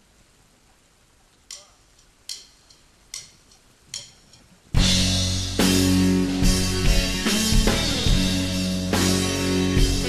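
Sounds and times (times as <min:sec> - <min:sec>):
faint hiss: 0:00.0 - 0:10.0
drumsticks clicking together: 0:01.4 - 0:04.6.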